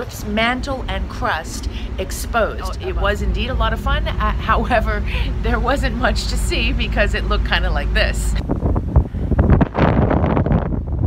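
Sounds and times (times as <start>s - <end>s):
gusting wind on microphone: 0.0s - 11.0s.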